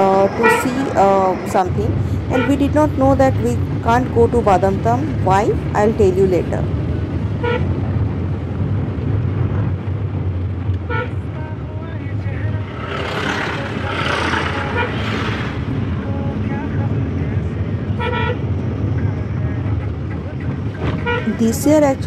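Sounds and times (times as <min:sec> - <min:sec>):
car engine and road rumble: 0:00.0 - 0:22.0
car horn toots: 0:00.2 - 0:01.0, 0:02.3 - 0:02.8, 0:07.4 - 0:07.7, 0:10.8 - 0:11.3, 0:13.3 - 0:15.4, 0:17.9 - 0:18.5, 0:20.8 - 0:21.7
hissing rush: 0:12.5 - 0:16.0.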